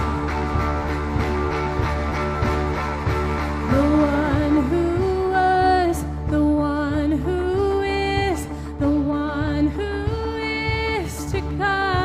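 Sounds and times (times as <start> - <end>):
worship band playing: 0.0 - 6.2
woman singing: 3.6 - 12.0.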